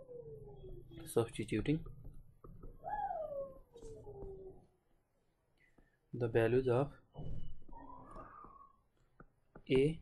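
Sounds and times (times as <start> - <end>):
animal whining: 0.0 - 1.1, 2.8 - 4.7.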